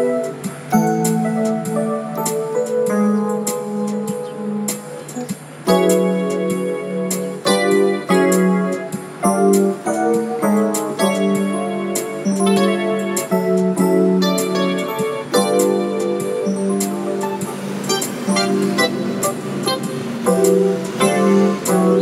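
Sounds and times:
piano-like keyboard chords: 0.0 - 22.0.

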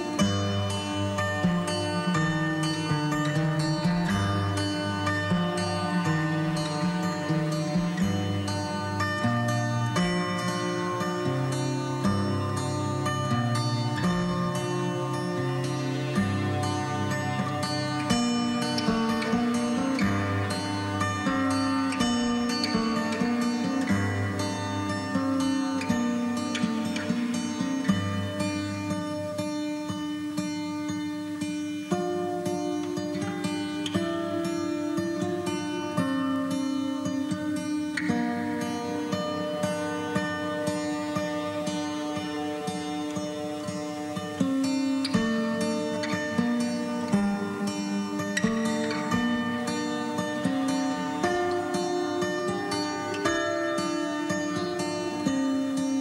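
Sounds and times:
plucked-string instrumental music: 0.0 - 56.0.

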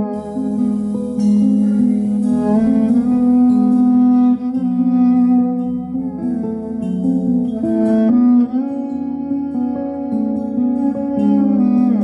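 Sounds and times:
acoustic guitar: 0.0 - 12.0
bowed cello: 0.0 - 12.0.

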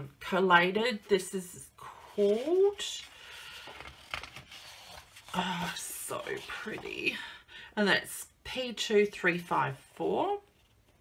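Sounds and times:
paper sheets sliding and rustling: 2.1 - 7.0
crisp paper crackles: 2.3 - 7.1.

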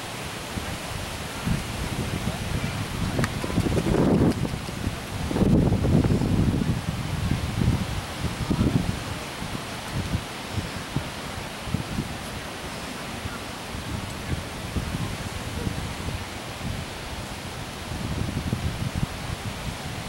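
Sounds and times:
steady rustling hiss: 0.0 - 20.0
wind buffeting microphone: 0.0 - 20.0.

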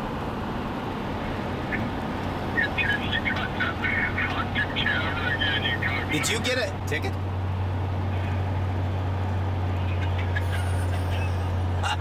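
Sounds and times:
vehicle road and engine noise: 0.0 - 12.0.

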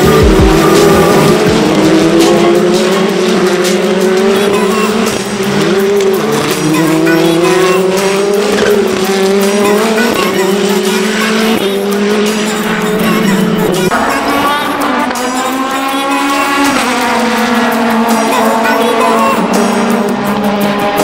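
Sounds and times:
race car engines whining: 0.0 - 21.0.

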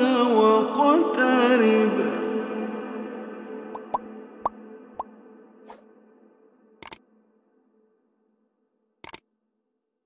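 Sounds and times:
cartoon plops with upward blip: 3.8 - 4.0.

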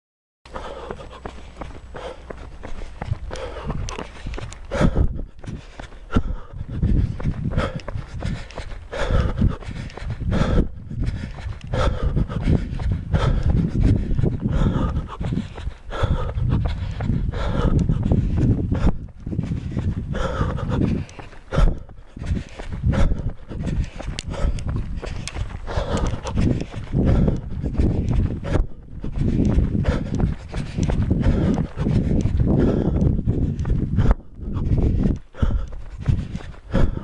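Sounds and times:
heavy panting breaths: 0.5 - 37.0
running footsteps on pavement: 0.5 - 37.0
wind rumble: 0.5 - 37.0.

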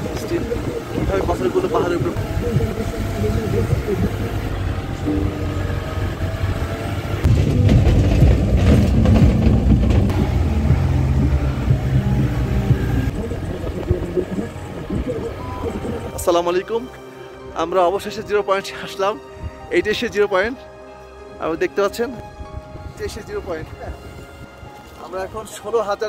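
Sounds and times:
vehicle engine and road noise: 0.0 - 17.8.

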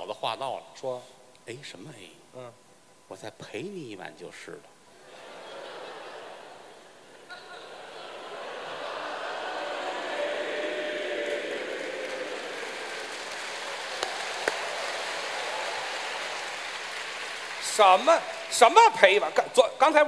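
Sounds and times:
audience laughing and applauding: 5.0 - 19.4.

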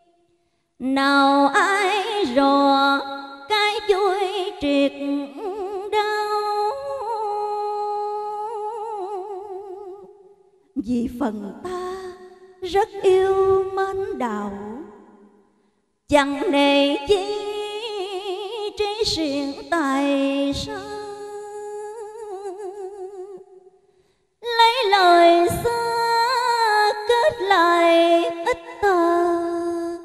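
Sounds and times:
woman singing into microphone: 0.8 - 10.1, 10.8 - 14.9, 16.1 - 23.4, 24.4 - 30.0.

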